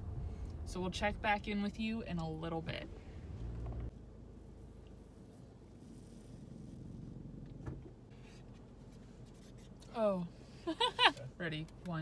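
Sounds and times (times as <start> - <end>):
car cabin road rumble: 0.0 - 12.0
faint rubbing noises: 4.6 - 9.9.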